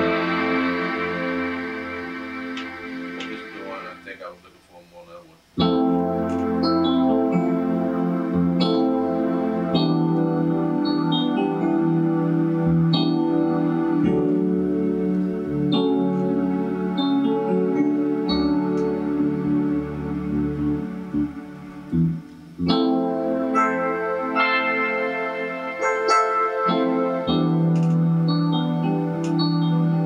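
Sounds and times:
piano and strings ballad: 0.0 - 4.4, 5.6 - 30.0.

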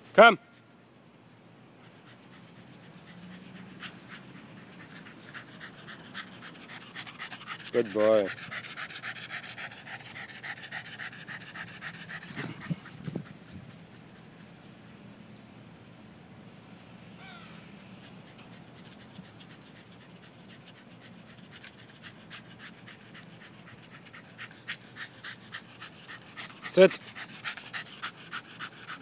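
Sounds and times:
dog panting: 1.8 - 14.6, 17.7 - 29.0.

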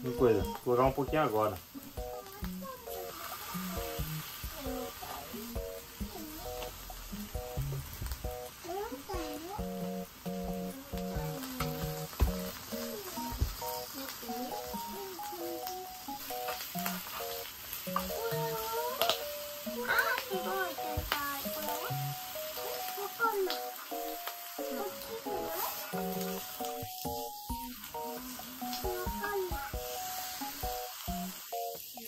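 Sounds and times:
background music melody: 0.0 - 32.0
patties sizzling on a griddle: 0.0 - 32.0.

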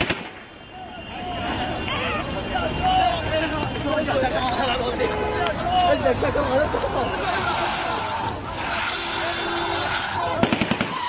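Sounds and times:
men shouting: 0.7 - 10.5.

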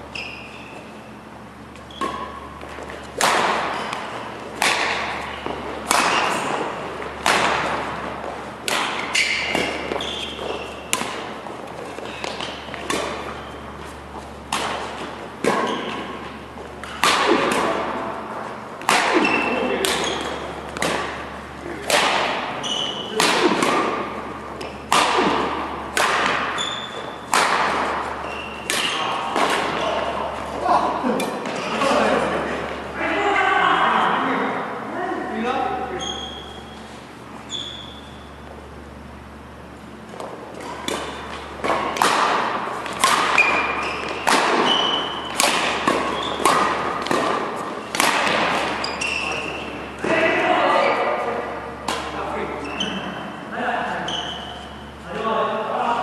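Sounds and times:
shoes squeaking on court: 0.0 - 21.6, 22.4 - 31.8, 35.9 - 42.0, 42.6 - 50.0, 52.0 - 55.1
rackets hitting shuttlecock: 1.6 - 32.8, 40.0 - 50.4, 51.0 - 52.2.

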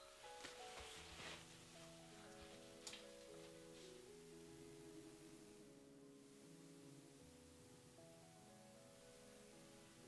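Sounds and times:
quiet background music: 0.0 - 10.0
faint rustles: 0.1 - 4.1.

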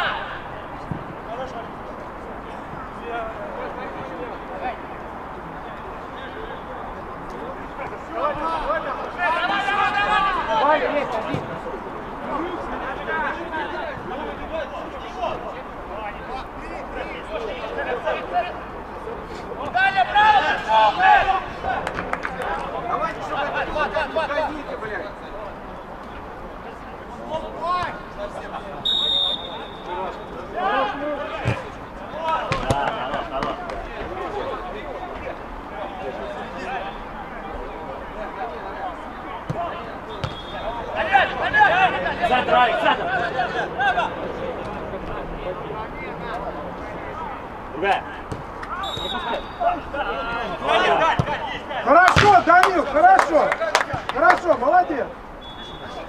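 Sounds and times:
players shouting: 0.0 - 0.7, 7.7 - 18.8, 19.6 - 25.0, 27.1 - 37.1, 38.1 - 46.4, 47.0 - 56.0
outdoor background noise: 0.0 - 56.0
high whistle tone: 28.8 - 29.9, 48.8 - 49.7, 55.4 - 56.0
ball kicks: 32.4 - 33.7, 39.5 - 40.5, 48.3 - 49.3, 52.1 - 52.4.

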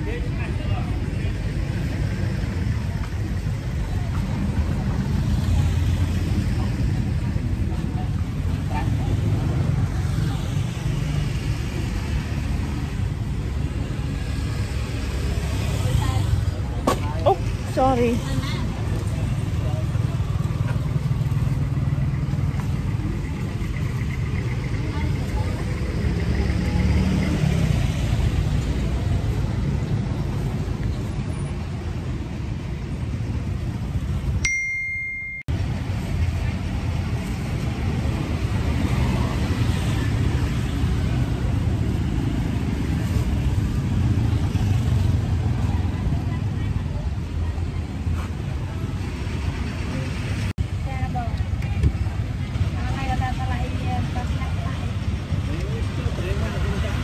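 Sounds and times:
road traffic: 0.0 - 57.0.

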